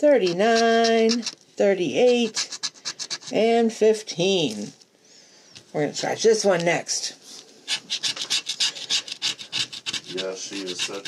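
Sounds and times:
scratching lottery ticket: 0.2 - 1.4, 2.0 - 3.6, 7.7 - 11.0.

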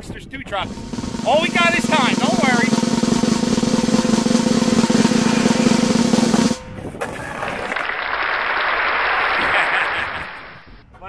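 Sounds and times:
drum-backed music: 0.6 - 6.8
skateboard wheels rolling on pavement: 6.7 - 9.8.

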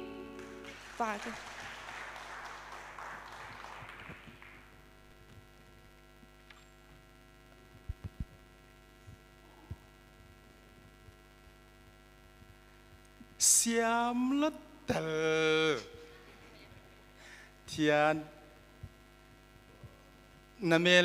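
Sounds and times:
electrical mains hum: 0.0 - 21.0
applause: 0.3 - 5.1.

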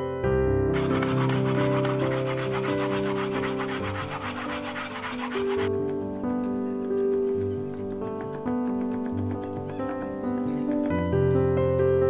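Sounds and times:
potato grating on plastic grater: 0.8 - 5.7.

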